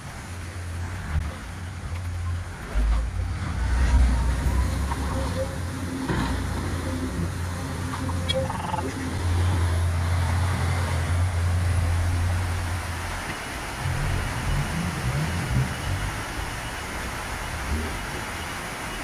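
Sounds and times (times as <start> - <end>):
truck diesel engine rumbling: 0.0 - 19.0.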